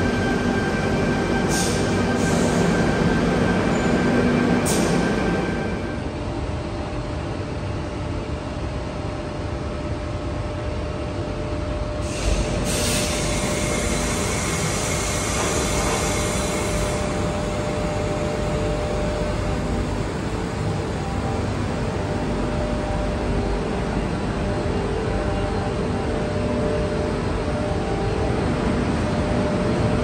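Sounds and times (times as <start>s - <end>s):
train equipment humming: 11.5s - 30.0s
compressed air hissing: 12.0s - 16.8s.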